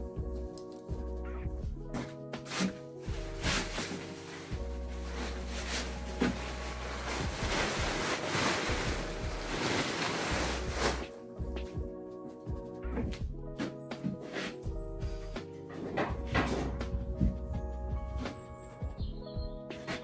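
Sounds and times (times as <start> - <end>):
lo-fi background music: 0.0 - 20.0
plastic tarpaulin rustling: 1.9 - 11.2.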